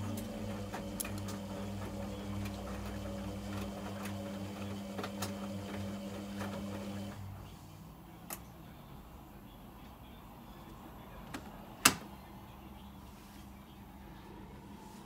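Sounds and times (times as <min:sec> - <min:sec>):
washing machine motor hum: 0:00.0 - 0:07.6.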